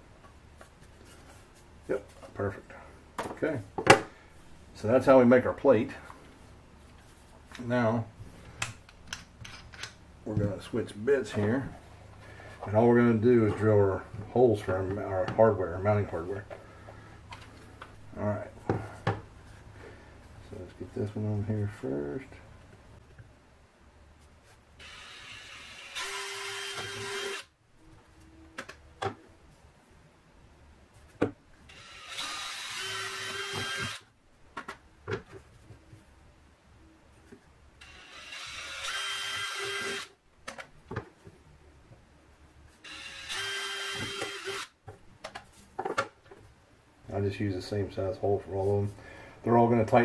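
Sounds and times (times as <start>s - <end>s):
cordless drill boring through wood: 24.8s - 27.5s, 31.7s - 34.1s, 37.8s - 40.1s, 42.8s - 44.7s.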